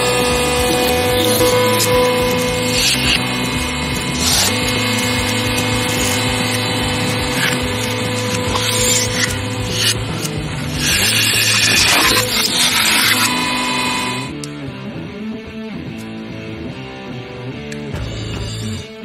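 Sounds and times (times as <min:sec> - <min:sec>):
can crackling and crunching: 0:00.0 - 0:14.2
hydraulic press humming: 0:00.0 - 0:14.5.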